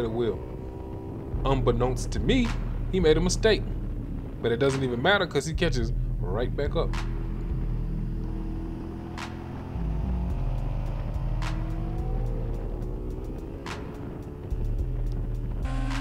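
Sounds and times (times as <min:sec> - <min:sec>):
motorcycle engine accelerating: 0:00.0 - 0:05.0, 0:05.6 - 0:16.0
background music: 0:00.0 - 0:16.0.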